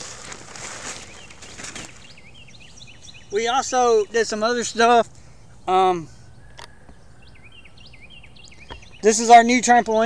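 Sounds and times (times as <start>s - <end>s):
rustling hiss: 0.0s - 2.1s
small birds chirping: 0.0s - 10.0s.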